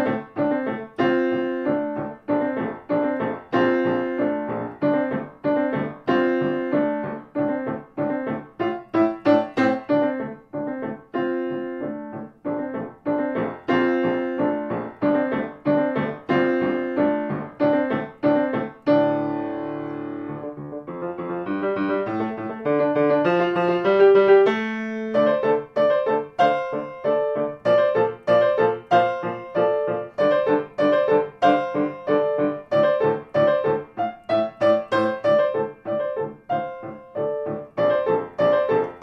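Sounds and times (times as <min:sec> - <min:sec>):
solo piano: 0:00.0 - 0:39.0.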